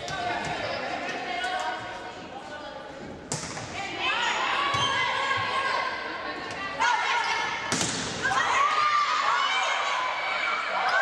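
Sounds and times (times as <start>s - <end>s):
volleyball struck by hands: 3.3s - 3.8s, 7.7s - 8.2s
players and spectators shouting: 8.2s - 11.0s.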